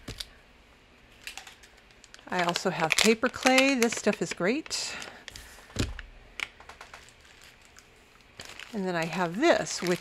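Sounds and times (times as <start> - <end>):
plastic wrapper rustling: 1.2 - 10.0
package thumping on mat: 5.7 - 6.1.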